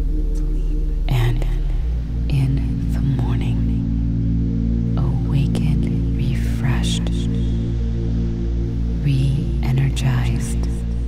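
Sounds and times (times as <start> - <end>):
person whispering: 0.0 - 3.8
soft ambient music: 0.0 - 11.0
steady low drone: 0.0 - 11.0.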